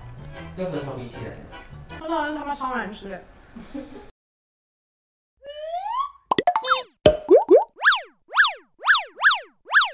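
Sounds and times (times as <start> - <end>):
quick swooping chirps: 6.5 - 9.9.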